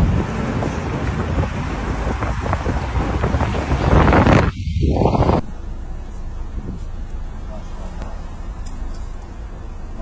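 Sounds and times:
wind buffeting microphone: 0.0 - 5.5
vehicle driving rumble: 0.0 - 10.0.

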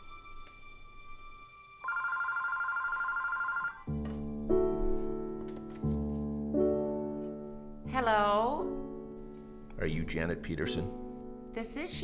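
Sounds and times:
phone ringing electronic trill: 1.8 - 4.0.

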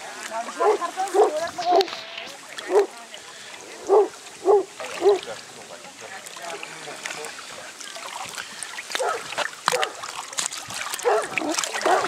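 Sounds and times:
dog barking: 0.6 - 1.4, 3.9 - 5.3, 9.0 - 10.0, 11.0 - 12.0.

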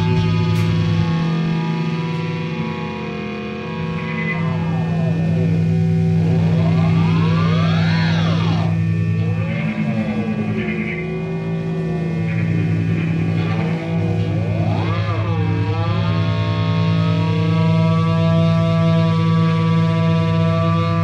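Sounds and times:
rock band electric drone: 0.0 - 21.0.

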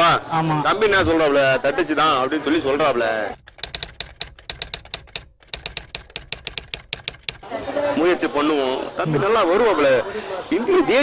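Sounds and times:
rapid typing on keys: 3.4 - 7.5.

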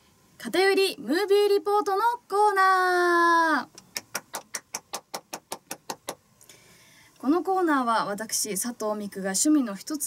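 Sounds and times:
person clapping hands quickly: 3.8 - 6.2.

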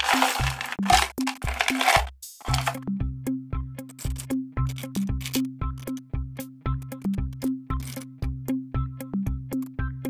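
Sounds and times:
snack packaging crackling: 0.0 - 2.8.

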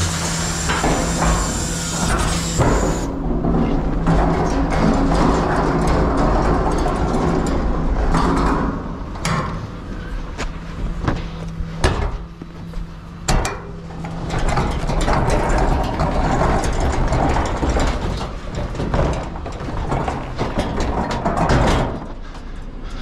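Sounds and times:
truck engine humming: 0.0 - 3.2
bin castors rumbling on concrete: 0.0 - 9.4, 14.0 - 22.6.

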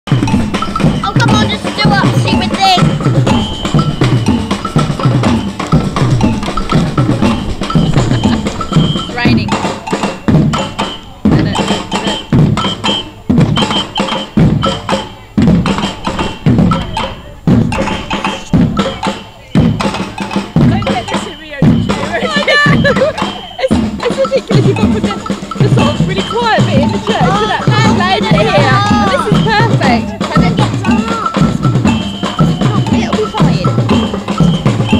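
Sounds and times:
bell strokes: 0.1 - 34.9
deep drum beats: 0.1 - 34.9.

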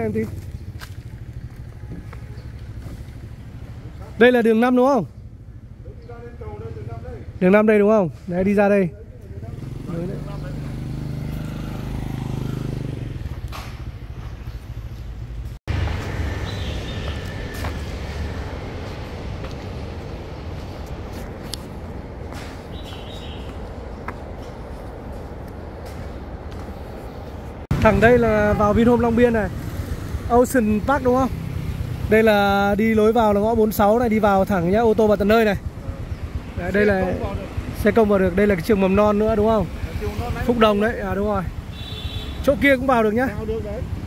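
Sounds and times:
street background rumble: 0.0 - 44.0.

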